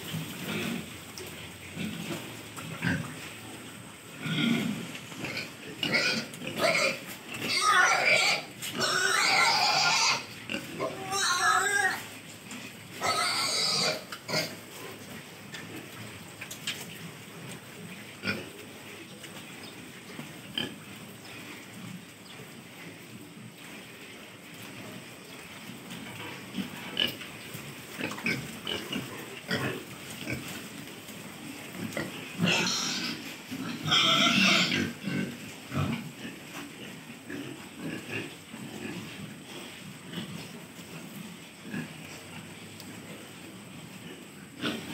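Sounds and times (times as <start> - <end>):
pigs grunting and snuffling: 0.0 - 44.9
pigs squealing: 4.2 - 12.2, 13.0 - 14.6, 31.9 - 36.2.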